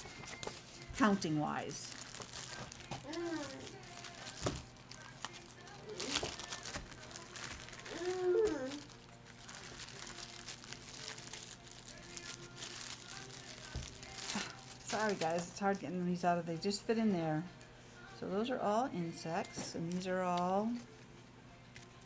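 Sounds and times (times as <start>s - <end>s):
cards rustling: 0.0s - 15.5s
woman murmuring: 7.9s - 8.9s.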